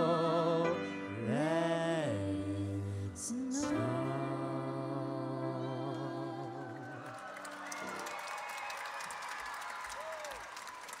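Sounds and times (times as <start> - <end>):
audience applauding: 6.5 - 11.0.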